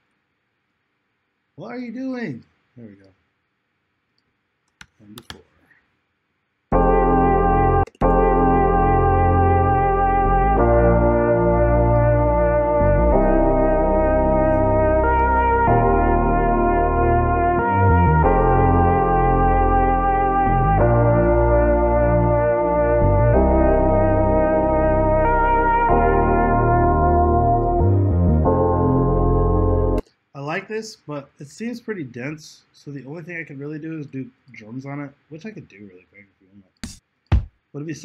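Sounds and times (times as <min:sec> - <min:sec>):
looping music sample: 0:06.7 - 0:30.0.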